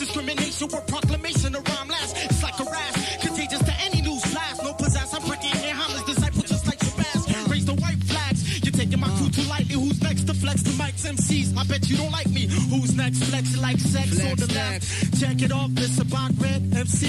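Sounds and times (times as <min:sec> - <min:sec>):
heavy bass line: 0:00.0 - 0:17.0
hip hop beat: 0:00.0 - 0:17.0
person rapping: 0:00.0 - 0:17.0.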